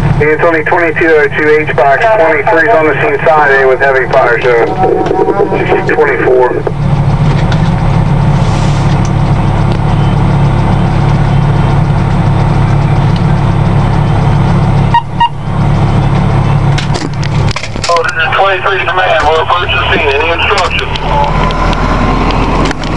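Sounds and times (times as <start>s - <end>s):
diesel engine droning: 0.0s - 22.9s.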